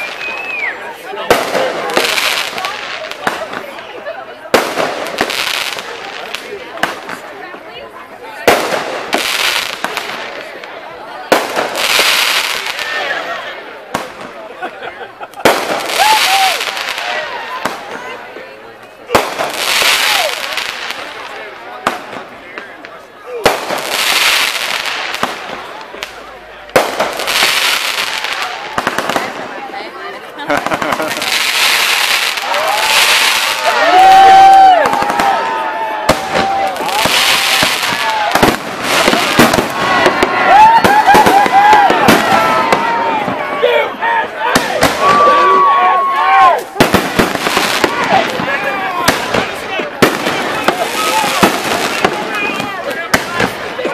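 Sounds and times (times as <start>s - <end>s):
fireworks banging and crackling: 0.0s - 53.9s
people calling out: 29.8s - 53.9s.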